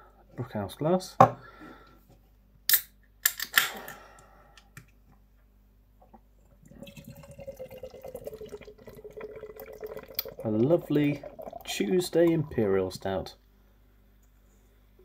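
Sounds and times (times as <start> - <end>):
beer pouring into glass: 6.6 - 13.0.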